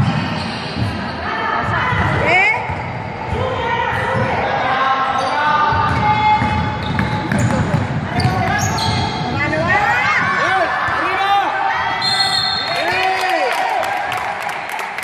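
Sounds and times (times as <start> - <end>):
voices calling out echoing: 0.1 - 14.6
basketball dribbling on gym floor: 5.8 - 10.3.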